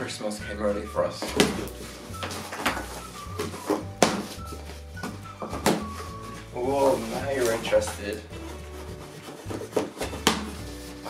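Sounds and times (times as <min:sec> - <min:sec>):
background music with bass: 0:00.0 - 0:11.0
cardboard box knocks and scrapes: 0:01.3 - 0:11.0.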